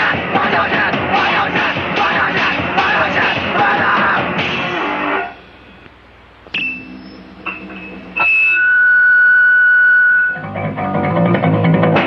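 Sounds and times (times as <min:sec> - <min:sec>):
punk rock song: 0:00.0 - 0:05.4, 0:09.3 - 0:12.0
band with bass and drums: 0:00.0 - 0:05.6, 0:06.6 - 0:12.0
electric guitar picked notes: 0:06.5 - 0:12.0.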